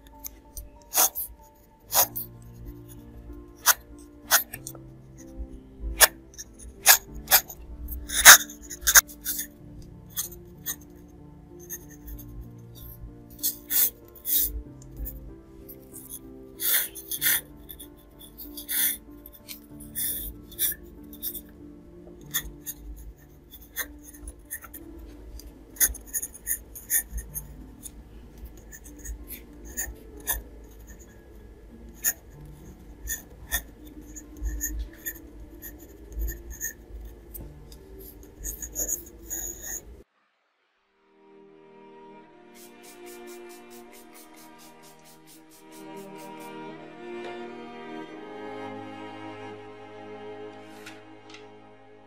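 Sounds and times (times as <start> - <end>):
soft background music: 0.0 - 40.1, 40.9 - 52.0
pencil scratching on paper: 0.1 - 40.0, 42.5 - 46.6.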